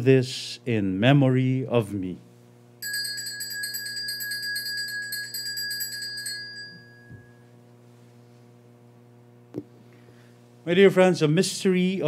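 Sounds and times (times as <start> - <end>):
altar bell shaken rapidly: 2.8 - 7.4.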